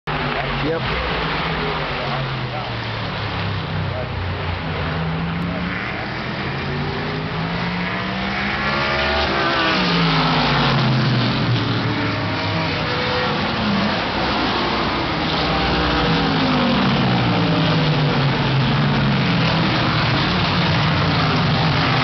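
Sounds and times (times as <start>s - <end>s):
race car engines: 0.1s - 22.0s.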